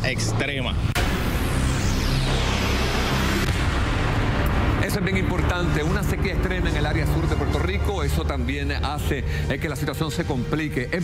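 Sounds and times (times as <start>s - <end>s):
sharp hit: 0.5s - 7.5s.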